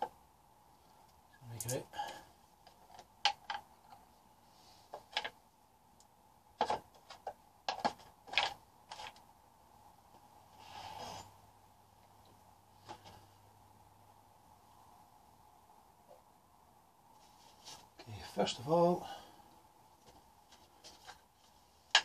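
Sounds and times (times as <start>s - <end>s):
faint steady hum: 0.0s - 22.0s
scraping rustle: 10.5s - 11.4s, 17.1s - 18.1s.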